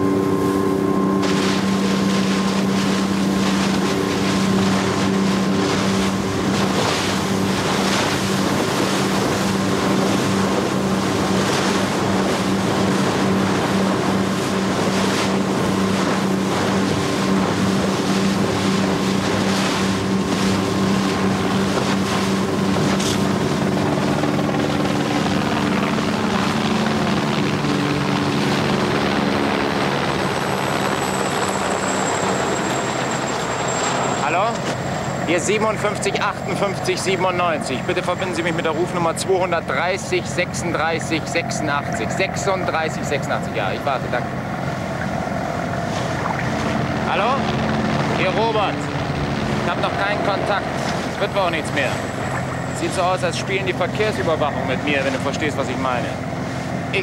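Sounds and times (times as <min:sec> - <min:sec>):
wind on microphone: 0:00.0 - 0:34.1, 0:43.4 - 0:52.8
helicopter engine: 0:00.0 - 0:57.0
motorboat engine running: 0:00.0 - 0:57.0
water rushing from wake: 0:00.0 - 0:57.0.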